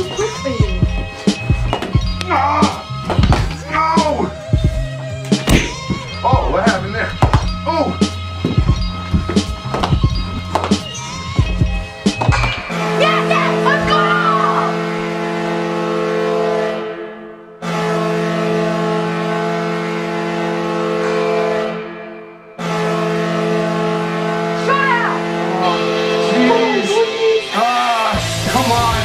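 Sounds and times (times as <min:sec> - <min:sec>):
beat-driven background music: 0:00.0 - 0:15.3, 0:24.6 - 0:29.0
hockey goal horn blasts: 0:12.7 - 0:27.6.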